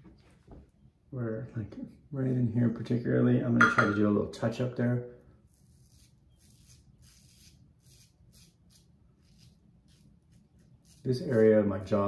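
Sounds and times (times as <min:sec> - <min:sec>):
razor scraping stubble: 0:05.5 - 0:11.7.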